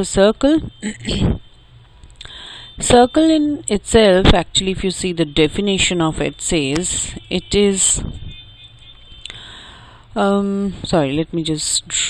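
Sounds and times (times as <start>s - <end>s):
microphone hum and hiss: 0.0s - 8.4s, 9.4s - 12.0s.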